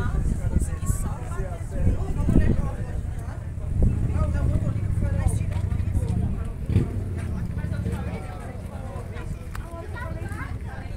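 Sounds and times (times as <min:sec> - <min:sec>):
people talking indistinctly: 0:00.0 - 0:10.9.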